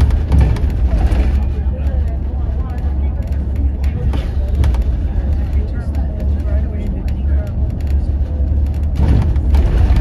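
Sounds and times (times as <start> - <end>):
diesel engine rumble: 0.0 - 10.0
tyre road noise: 0.0 - 10.0.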